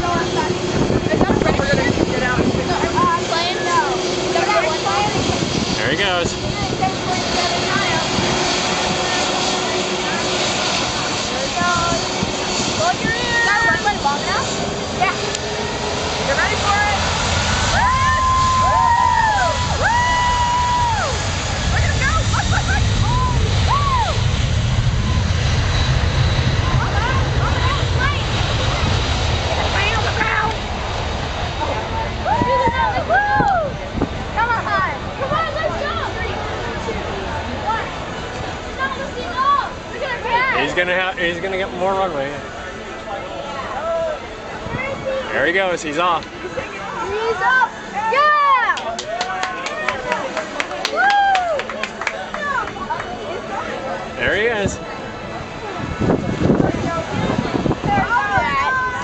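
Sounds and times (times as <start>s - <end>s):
deep low rumble: 0.0s - 40.2s
crowd voices and shouts: 0.0s - 59.0s
jet engines running: 0.0s - 59.0s.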